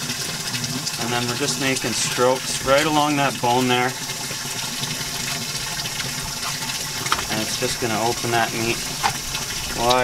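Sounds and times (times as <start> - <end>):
running water rushing: 0.0 - 10.0.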